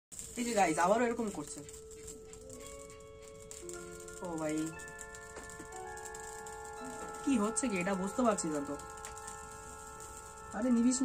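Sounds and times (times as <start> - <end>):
music of held layered notes: 1.7 - 11.0.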